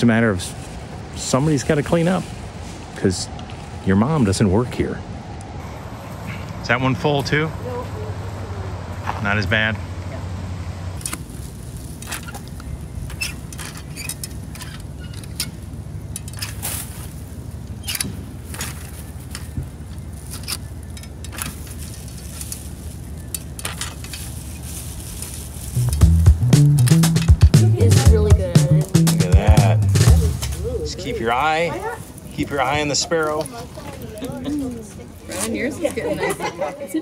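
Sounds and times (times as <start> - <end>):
music with vocals: 25.8 - 30.7.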